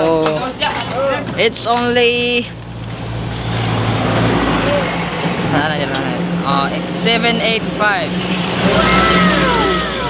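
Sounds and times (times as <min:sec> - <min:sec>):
vehicle engine passing: 0:02.6 - 0:10.0.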